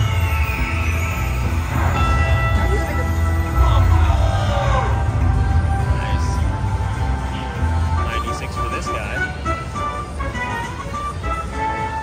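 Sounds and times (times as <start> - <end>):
slot machine electronic tones: 0.0 - 4.4
low casino floor rumble: 0.0 - 12.0.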